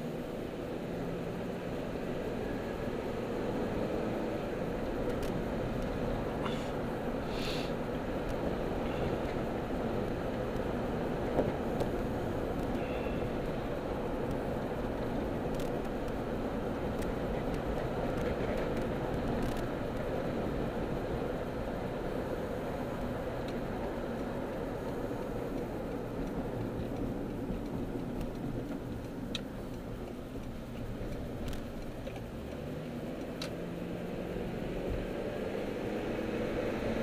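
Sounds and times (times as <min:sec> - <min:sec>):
car road and engine noise: 0:00.0 - 0:37.0.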